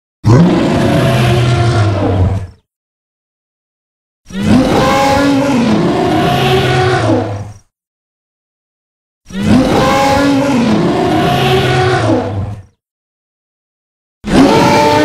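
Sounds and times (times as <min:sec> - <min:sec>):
growling dinosaur roar: 0:00.2 - 0:02.6, 0:04.3 - 0:07.4, 0:09.3 - 0:12.7, 0:14.3 - 0:15.0.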